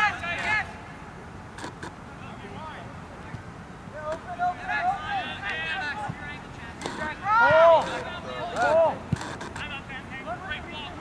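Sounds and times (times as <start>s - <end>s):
distant players shouting: 0.0s - 1.1s, 2.4s - 11.0s.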